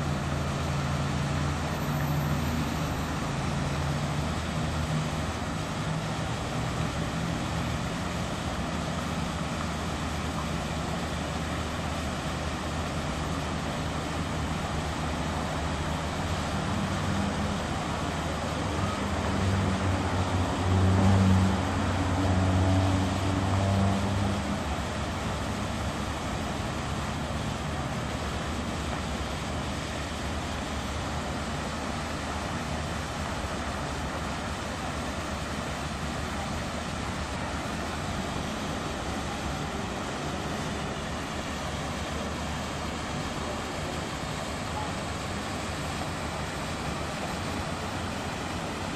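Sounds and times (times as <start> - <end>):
steady traffic noise: 0.0 - 48.9.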